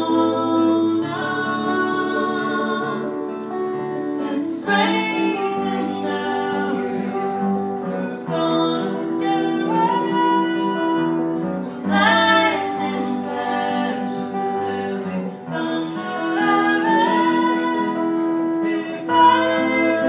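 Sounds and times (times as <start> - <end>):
acoustic guitars: 0.0 - 20.0
women singing in harmony: 0.0 - 20.0.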